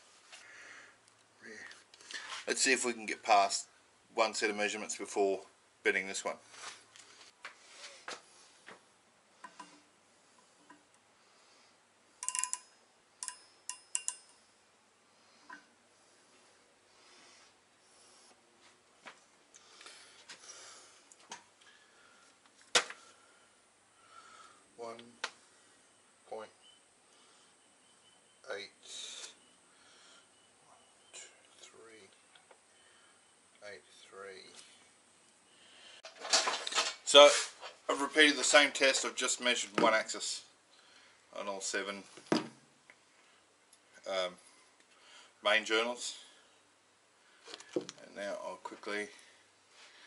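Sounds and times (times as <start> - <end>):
micrometer metallic clicks: 12.2 - 14.4
short hiss: 37.1 - 37.6.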